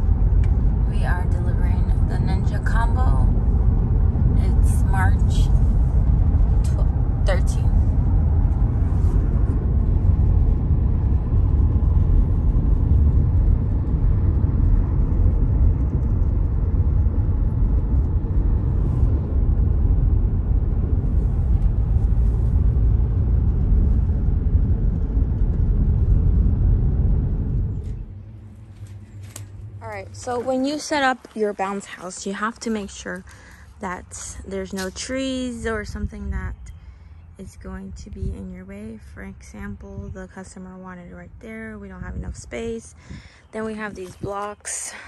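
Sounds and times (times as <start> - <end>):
road and engine rumble in car: 0.0 - 45.0.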